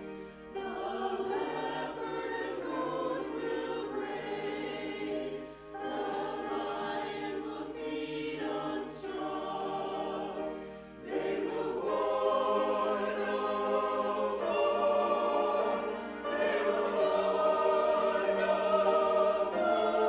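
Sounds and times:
choir singing: 0.0s - 20.0s
piano accompaniment: 0.0s - 20.0s
singers breathing: 10.5s - 11.1s.

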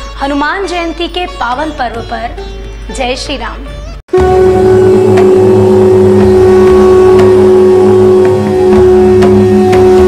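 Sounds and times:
devotional music: 3.9s - 10.0s
conch shell blast: 4.1s - 10.0s
sharp percussive strikes: 4.1s - 10.0s.

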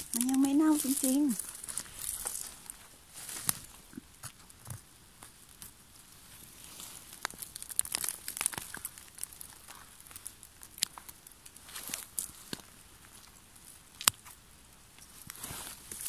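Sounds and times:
footsteps on soft forest floor: 0.0s - 3.9s
hands rustling through moss and leaves: 0.0s - 4.2s, 5.2s - 14.4s, 15.0s - 16.0s.

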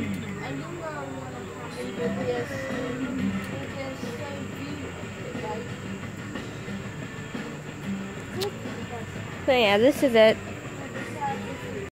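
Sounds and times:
faint voices: 0.0s - 7.0s, 8.2s - 11.9s
electric fan humming: 0.0s - 11.9s.

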